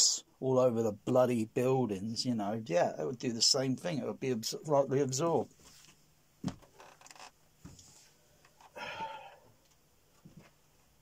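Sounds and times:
breathy vocal sound: 0:08.7 - 0:09.6.

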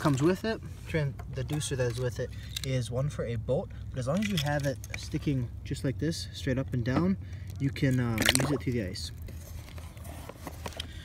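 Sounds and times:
low steady rumble: 0:00.0 - 0:11.0
slushy water stirring: 0:07.5 - 0:10.0.

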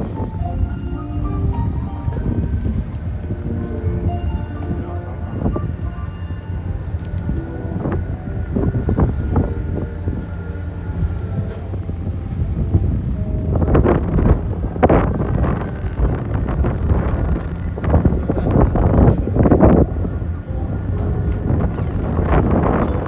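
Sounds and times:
faint music with held notes: 0:00.0 - 0:23.0
wind buffeting microphone: 0:00.0 - 0:23.0.

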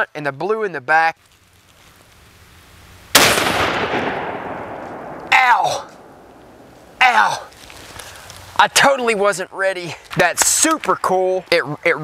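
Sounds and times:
soft outdoor rustle: 0:00.0 - 0:03.2, 0:04.3 - 0:12.0
person speaking: 0:05.2 - 0:06.1, 0:06.8 - 0:07.9.

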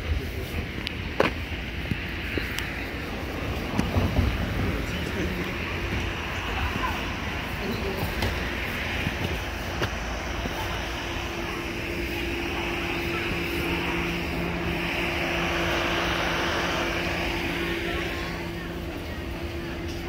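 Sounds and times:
distant engine droning: 0:00.0 - 0:20.0.

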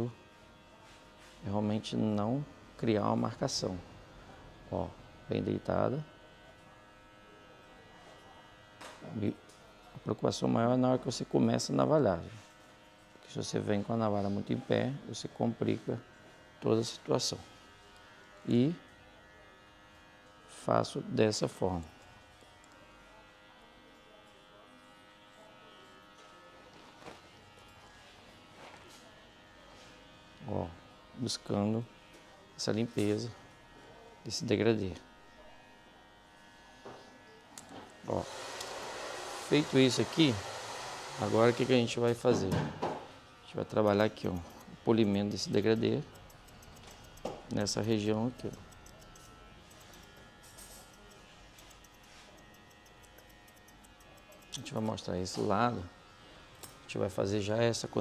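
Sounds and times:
razor scraping short hair: 0:00.0 - 0:58.0
faint electric hum: 0:43.0 - 0:58.0
scissors snipping hair: 0:43.6 - 0:56.9.

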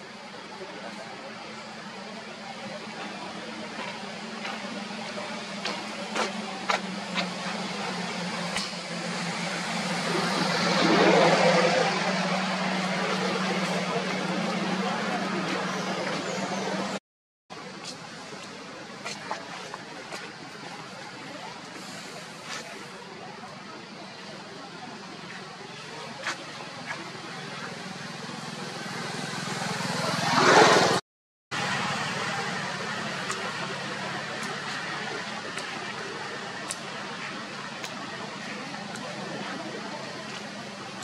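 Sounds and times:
loud outdoor noise: 0:00.0 - 0:41.0
vehicle engine running: 0:00.0 - 0:41.0.

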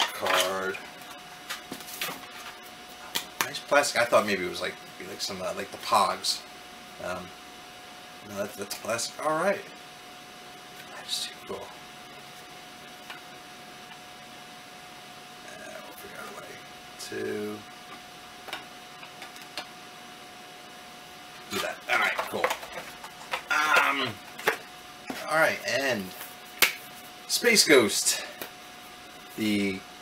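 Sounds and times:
faint steady hum: 0:00.0 - 0:30.0
steady hiss: 0:00.5 - 0:30.0.

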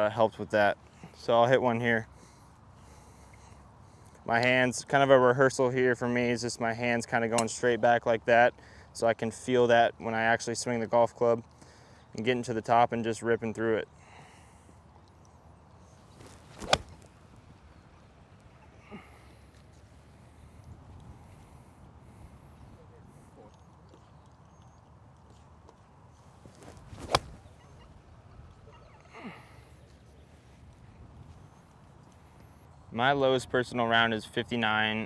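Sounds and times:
golf club striking ball: 0:16.5 - 0:17.0, 0:27.0 - 0:27.4.

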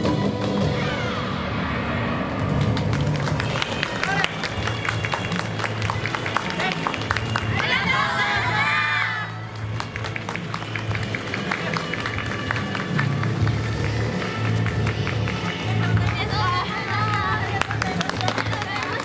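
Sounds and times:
crowd shouting and cheering: 0:00.0 - 0:19.0
dance music over loudspeaker: 0:11.2 - 0:19.0.

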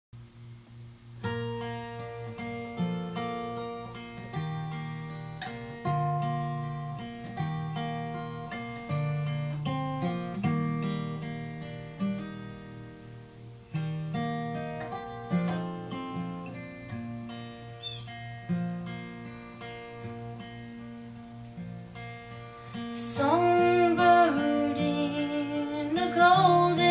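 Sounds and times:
acoustic guitar picking: 0:00.4 - 0:26.9.

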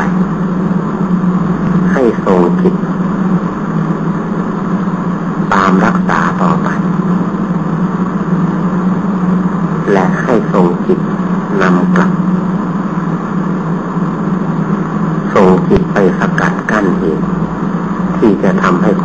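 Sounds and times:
low hum and hiss: 0:00.0 - 0:19.0
man speaking: 0:01.9 - 0:02.8, 0:05.5 - 0:06.8, 0:09.8 - 0:12.2, 0:15.3 - 0:17.3, 0:18.2 - 0:19.0.

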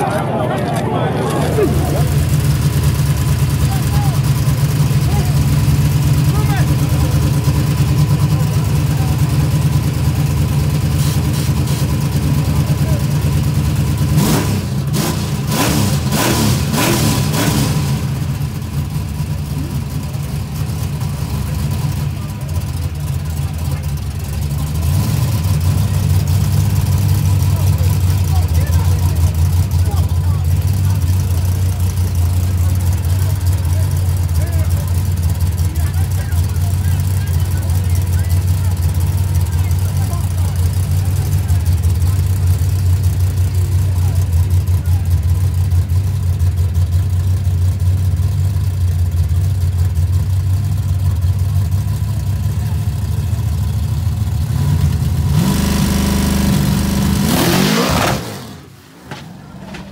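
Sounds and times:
loud car engine idling and revving: 0:00.0 - 0:59.9.

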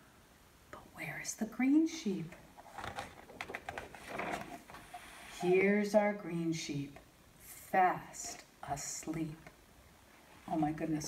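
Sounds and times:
book page turning: 0:02.6 - 0:05.4.

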